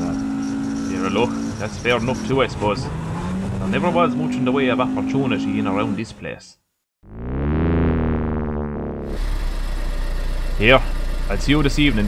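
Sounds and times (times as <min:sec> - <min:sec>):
car engine idling: 0:08.4 - 0:12.0.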